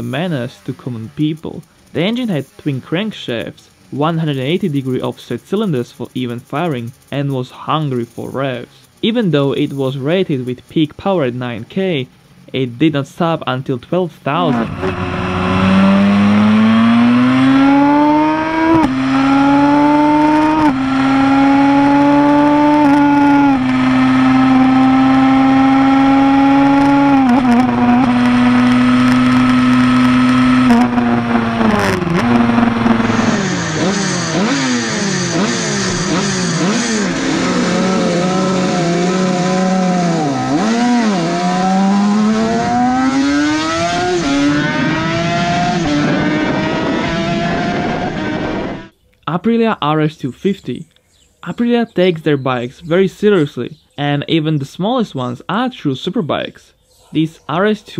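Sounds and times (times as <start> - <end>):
two-stroke engine accelerating: 14.5 - 48.9.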